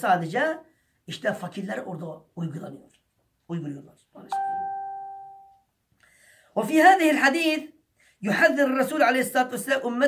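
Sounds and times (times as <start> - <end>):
electronic chime ding: 4.3 - 5.6.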